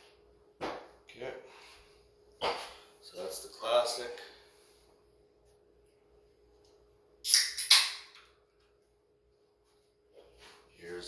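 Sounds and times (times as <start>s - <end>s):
beer can tab snapping: 7.2s - 8.3s.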